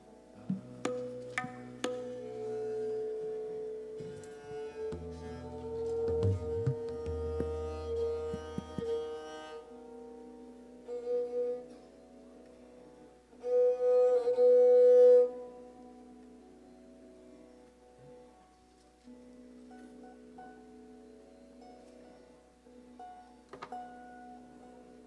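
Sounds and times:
bowed string instrument: 0:00.0 - 0:25.0
soft knocks: 0:00.5 - 0:02.2, 0:04.8 - 0:09.1.

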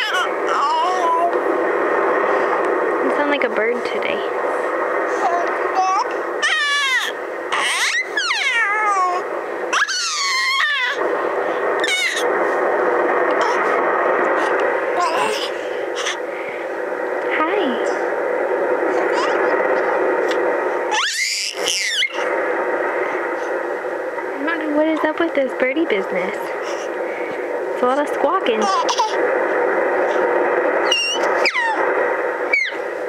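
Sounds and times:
steady background noise: 0:00.0 - 0:33.0
baby squawking and squealing: 0:06.4 - 0:09.1, 0:09.7 - 0:11.0, 0:11.8 - 0:12.2, 0:20.9 - 0:22.2, 0:30.9 - 0:31.8, 0:32.5 - 0:32.8.

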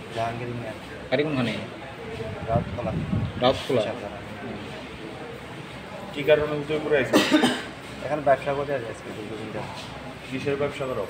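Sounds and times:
person coughing: 0:07.1 - 0:07.7.

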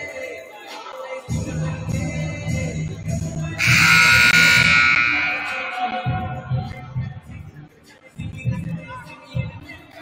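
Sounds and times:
background music: 0:00.0 - 0:10.0
scoreboard horn buzzing: 0:03.6 - 0:06.5.

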